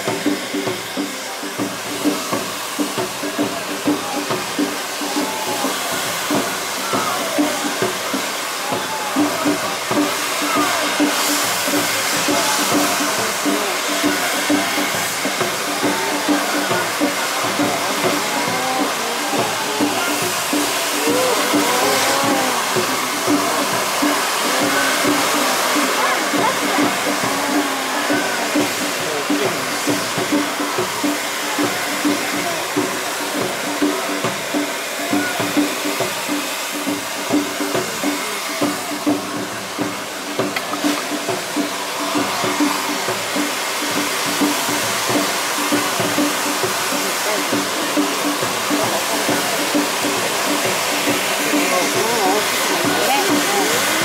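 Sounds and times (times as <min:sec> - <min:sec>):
crowd voices: 0:00.0 - 0:54.0
fireworks spraying with rushing hiss: 0:00.0 - 0:54.0
music: 0:00.0 - 0:54.0.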